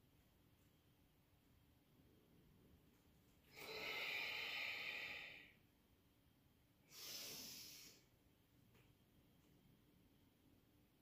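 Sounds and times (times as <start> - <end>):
person exhaling through the mouth: 3.5 - 5.5, 6.9 - 8.1.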